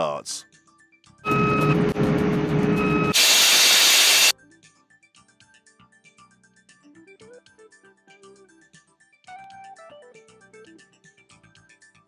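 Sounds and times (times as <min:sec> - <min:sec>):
engine room machinery drone: 0:01.3 - 0:04.3
loud hiss: 0:03.2 - 0:04.3.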